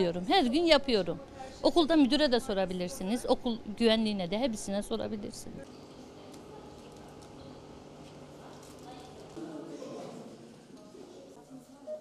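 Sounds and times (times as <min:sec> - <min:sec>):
faint indistinct voices: 0:00.0 - 0:03.7, 0:05.3 - 0:12.0.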